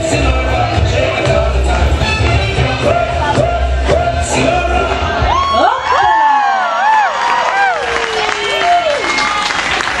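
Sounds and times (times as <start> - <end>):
audience applauding: 6.5 - 10.0.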